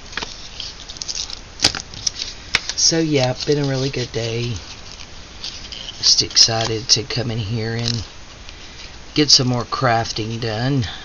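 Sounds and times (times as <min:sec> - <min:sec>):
paper rustling: 0:00.0 - 0:09.0.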